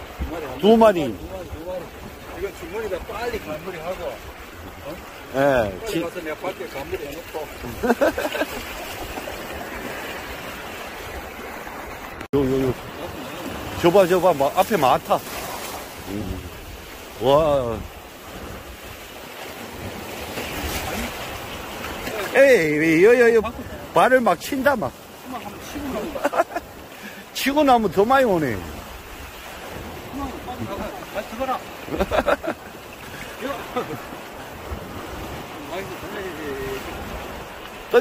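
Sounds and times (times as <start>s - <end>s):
seawater lapping in surf: 0.0s - 38.0s
small waves washing: 0.0s - 38.0s.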